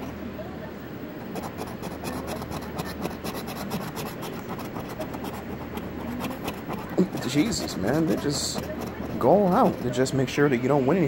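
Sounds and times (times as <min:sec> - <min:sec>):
coin scraping lottery ticket: 0:01.3 - 0:10.2.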